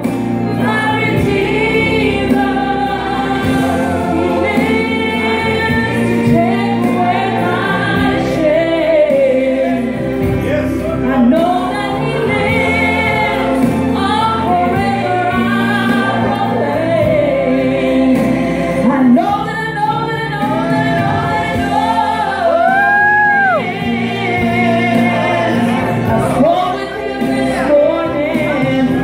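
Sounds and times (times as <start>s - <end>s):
woman singing gospel song: 0.0s - 10.2s, 11.0s - 29.0s
instrumental accompaniment: 0.0s - 29.0s.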